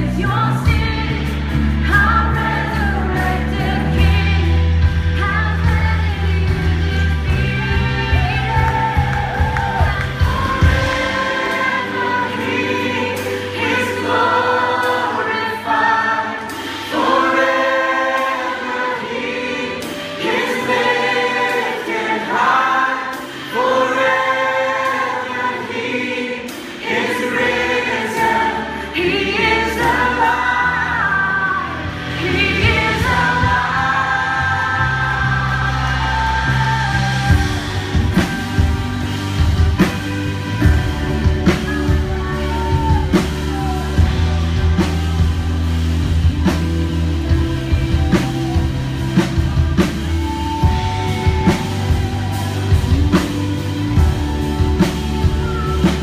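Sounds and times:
many voices singing together: 0.0 - 56.0.

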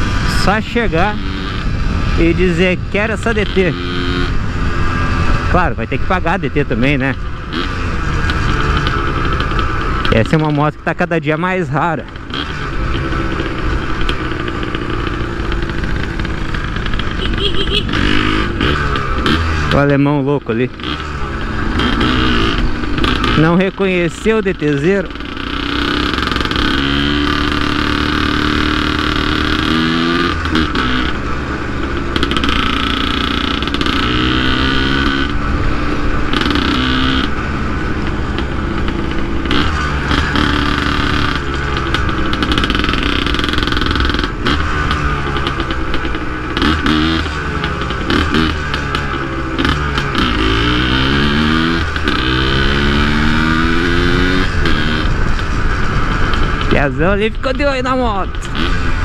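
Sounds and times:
two-stroke motorcycle engine revving: 0.0 - 59.0.

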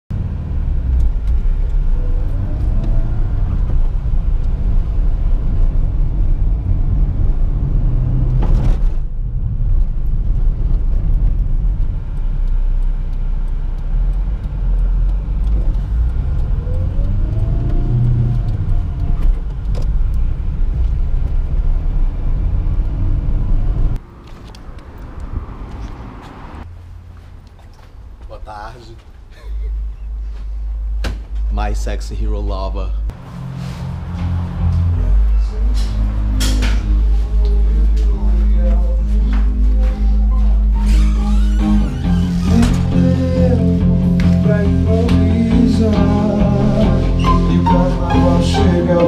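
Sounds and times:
engine and road rumble in car: 0.1 - 28.3
quiet street sound: 0.1 - 49.0.

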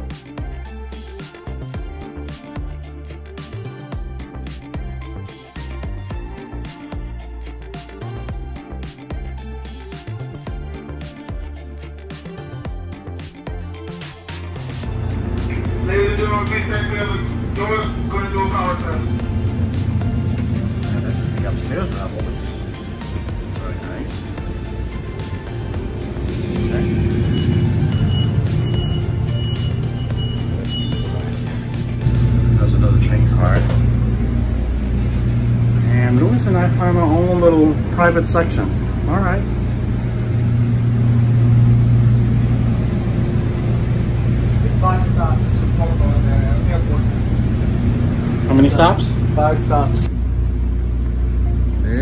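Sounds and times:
background music: 0.0 - 52.0
diesel train rumbling: 14.7 - 52.0.

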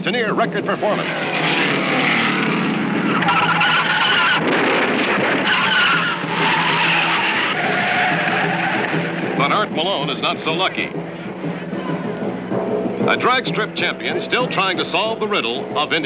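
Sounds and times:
race car engine: 0.0 - 11.7
tyres squealing: 0.9 - 10.4.

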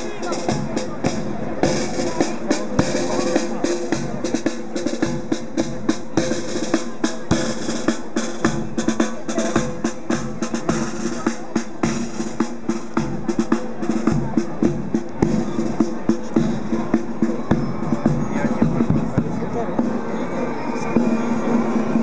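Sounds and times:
snare drums beating: 0.0 - 20.0
band music: 0.0 - 22.0.

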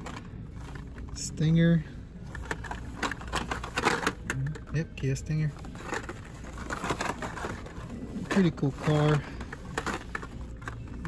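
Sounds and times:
store background noise: 0.0 - 11.0.

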